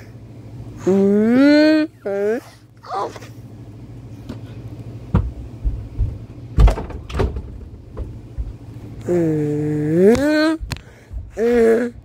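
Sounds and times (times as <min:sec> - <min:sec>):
steady low hum: 0:00.0 - 0:12.0
person saying uh: 0:09.0 - 0:10.7, 0:11.4 - 0:12.0.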